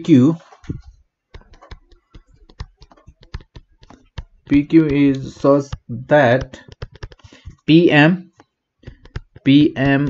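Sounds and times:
stylus tapping on tablet screen: 0.4s - 10.0s.

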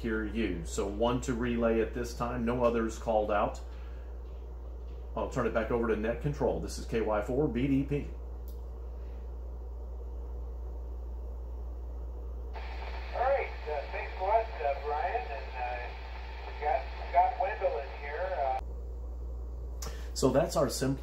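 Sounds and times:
low steady hum: 0.0s - 21.0s
man's voice over radio speaker: 12.6s - 18.6s.

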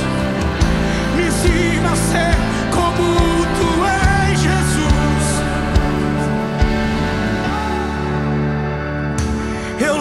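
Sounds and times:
live band instrumental: 0.0s - 10.0s.

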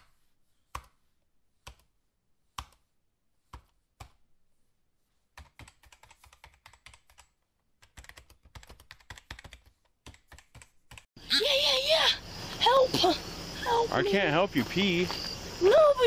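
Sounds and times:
computer keyboard typing: 5.4s - 11.1s
crickets chirping: 11.2s - 16.0s
high wavering voice: 11.3s - 14.2s.

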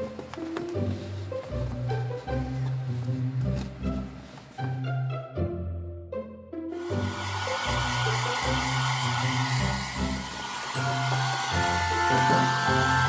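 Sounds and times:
background music: 0.0s - 13.0s
hair dryer blowing: 6.8s - 13.0s.

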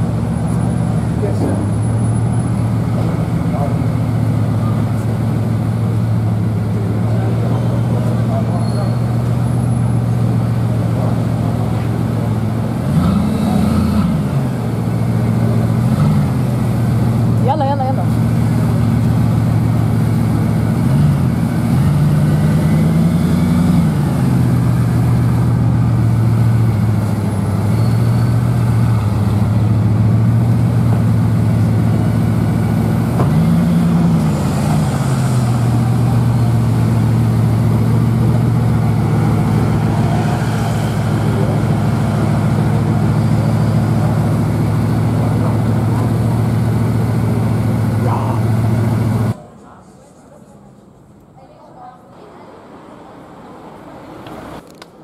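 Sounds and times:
car engine idling and revving: 0.0s - 49.4s.

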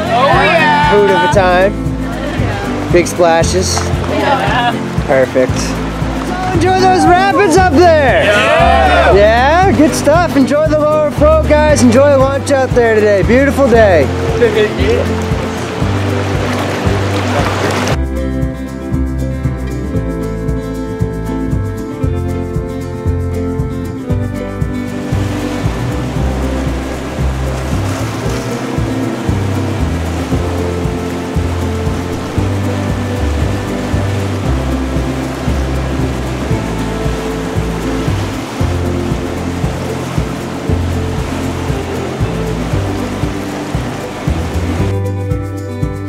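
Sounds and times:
whitewater rapids rushing: 0.0s - 18.0s, 24.9s - 45.2s
background music: 0.0s - 46.0s.

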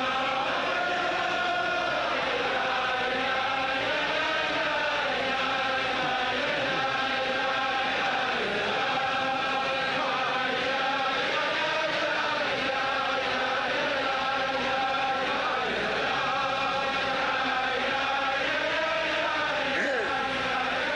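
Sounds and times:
crowd of men singing: 0.0s - 20.9s.

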